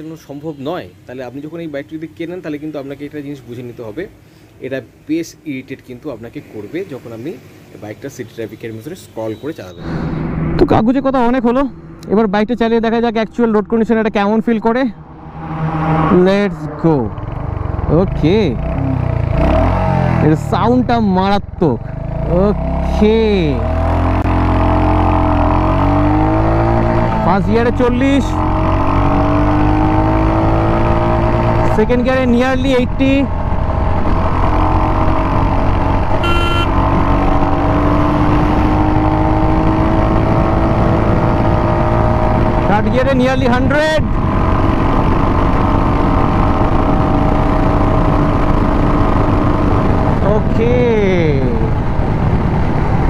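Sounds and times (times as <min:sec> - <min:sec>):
wind and road noise: 0:00.0 - 0:53.0
wind rush: 0:09.8 - 0:13.3, 0:14.6 - 0:17.9
motorcycle engine accelerating: 0:09.8 - 0:53.0.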